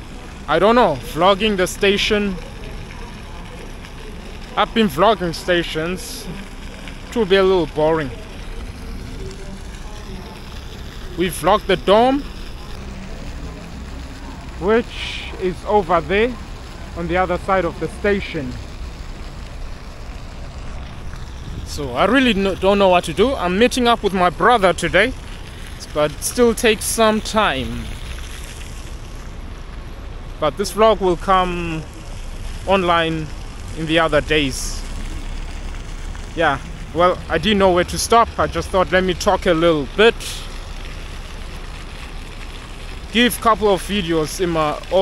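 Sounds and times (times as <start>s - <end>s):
low ragged rumble: 0.0s - 44.8s
wind rumble on microphone: 19.6s - 22.7s.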